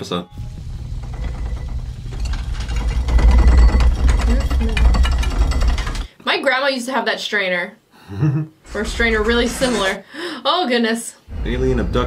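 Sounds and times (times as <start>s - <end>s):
faint rattling: 0.4s - 6.2s.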